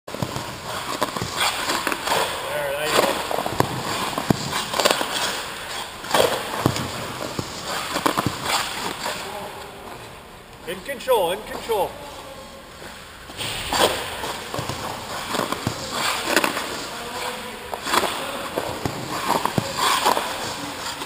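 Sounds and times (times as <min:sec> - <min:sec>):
skate blades scraping ice: 0:00.1 - 0:10.1, 0:12.7 - 0:21.0.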